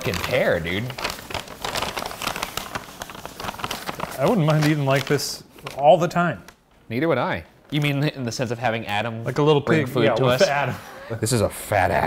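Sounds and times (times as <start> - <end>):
paper wrappers crinkling: 0.0 - 6.7, 7.4 - 9.0.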